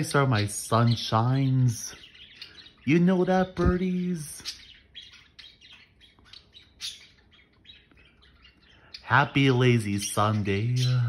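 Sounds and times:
budgerigars chirping: 0.0 - 11.0.

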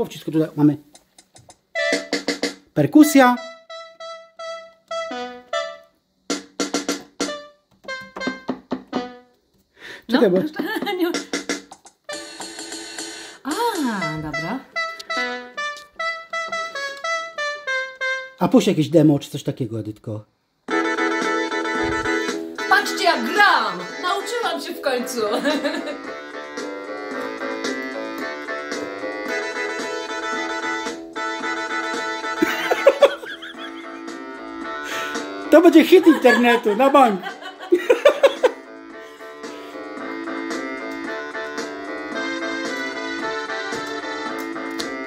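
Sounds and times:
electronic keyboard demo song: 1.4 - 9.6, 10.2 - 19.0, 20.7 - 45.0
held electronic keyboard note: 3.0 - 5.9, 7.2 - 9.3, 13.8 - 18.4, 26.0 - 32.4.

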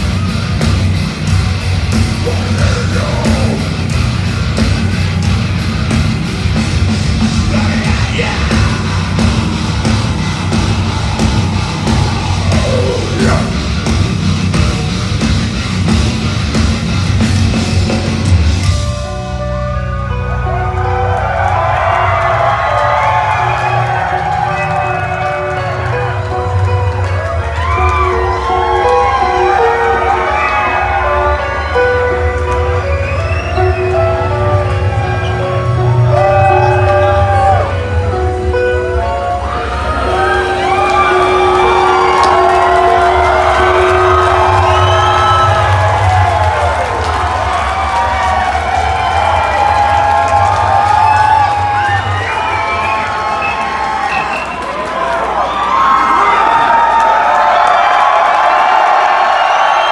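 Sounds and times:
electric guitar sustained notes: 0.0 - 55.0
crowd cheering and whooping: 0.0 - 59.9.

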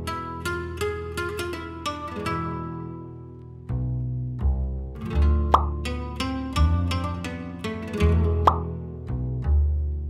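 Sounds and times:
plucked string notes: 0.0 - 10.0
deep bass notes: 3.5 - 10.0.

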